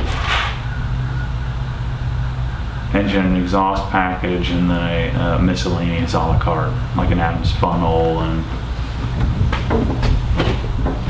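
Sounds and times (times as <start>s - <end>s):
low rumble: 0.0s - 10.9s.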